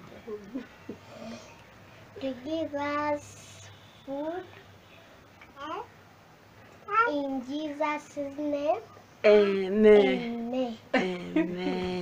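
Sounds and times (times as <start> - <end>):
girl chanting prayer: 2.2 - 4.7, 5.6 - 5.9, 6.9 - 9.0, 10.0 - 11.0.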